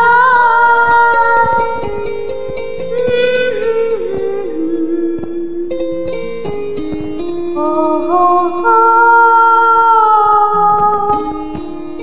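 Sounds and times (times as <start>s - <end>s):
woman singing a long note: 3.0s - 5.8s, 7.6s - 11.6s.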